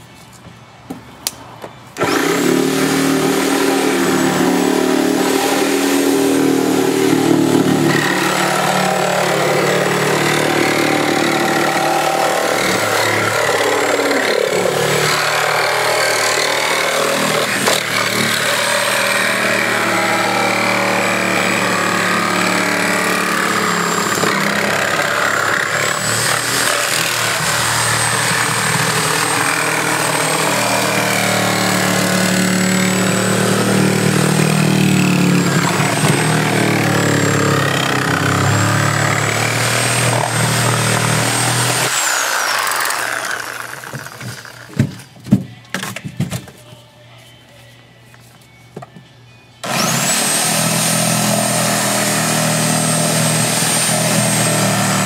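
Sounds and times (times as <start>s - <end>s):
power saw cutting steel: 2.0s - 44.9s, 49.6s - 55.0s.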